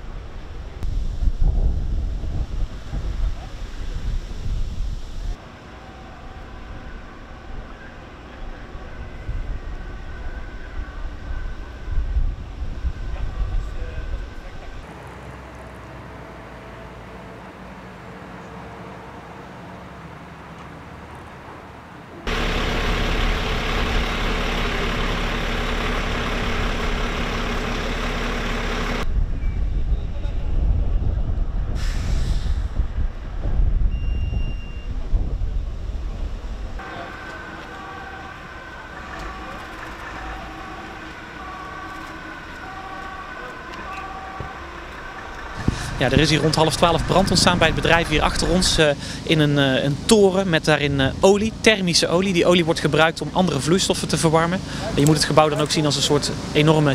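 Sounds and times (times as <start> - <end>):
distant two-tone siren: 5.4 - 19.5, 22.2 - 30.2, 36.8 - 48.9
loud machine noise: 22.3 - 29.1, 36.8 - 56.9.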